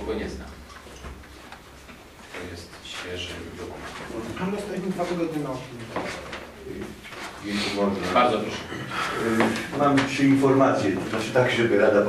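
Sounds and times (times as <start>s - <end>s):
man talking: 0.0s - 0.6s, 2.3s - 12.0s.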